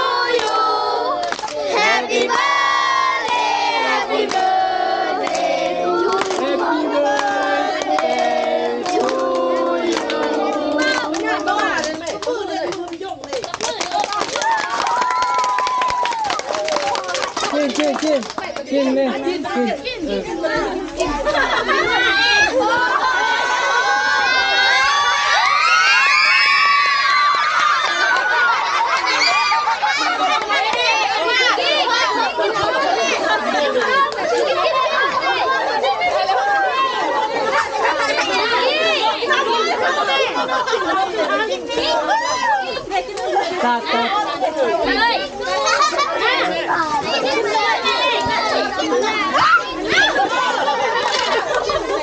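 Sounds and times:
children shouting and cheering: 0.0 - 17.7, 18.4 - 52.0.

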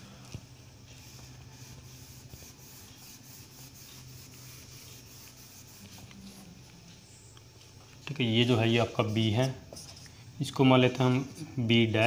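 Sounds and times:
faint steady hum: 0.0 - 12.0
whiteboard being wiped: 0.3 - 7.2, 8.4 - 10.2.

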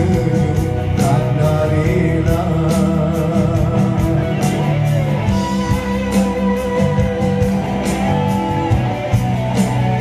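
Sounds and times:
man singing into microphone: 0.0 - 4.7
pop backing music with guitar and drums: 0.0 - 10.0.

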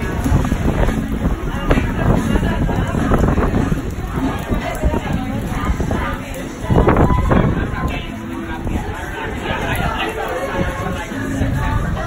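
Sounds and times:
rain: 0.0 - 12.0
voices: 0.0 - 12.0
wind on microphone: 0.0 - 12.0.

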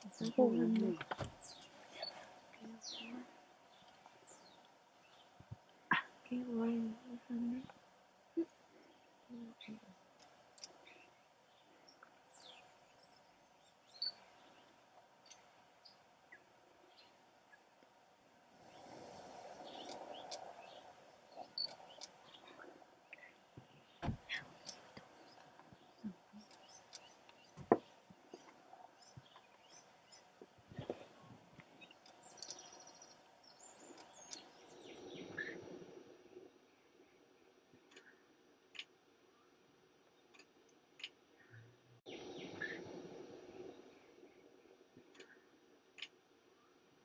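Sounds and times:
faint bird chirps: 0.0 - 7.8, 8.4 - 17.7, 18.6 - 35.8, 40.2 - 46.8
soft rush of noise: 0.0 - 47.0.

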